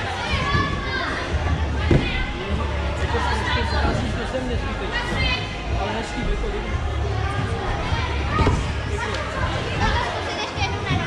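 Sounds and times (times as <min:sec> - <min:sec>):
children talking and calling out: 0:00.0 - 0:02.3, 0:07.1 - 0:11.0
thump on padded mat: 0:01.9 - 0:02.2.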